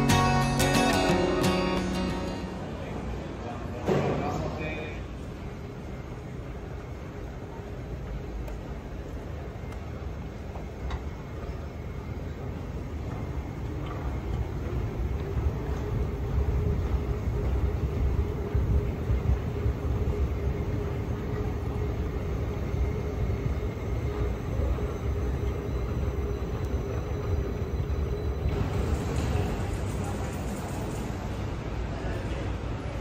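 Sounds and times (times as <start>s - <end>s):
faint constant hum: 0.0s - 33.0s
moving walkway rumbling: 5.0s - 33.0s.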